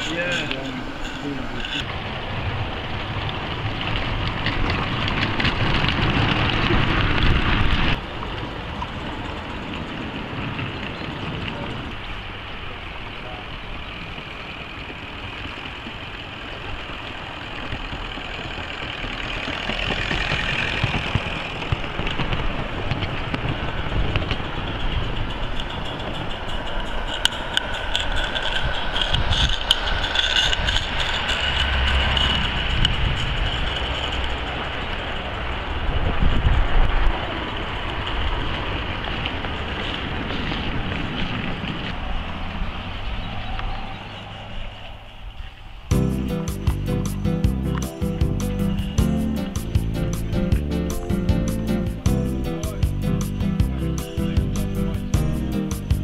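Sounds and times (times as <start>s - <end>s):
people talking: 0.0s - 1.8s, 11.3s - 12.0s, 12.6s - 13.6s, 52.1s - 55.9s
model trains running on track: 0.0s - 45.9s.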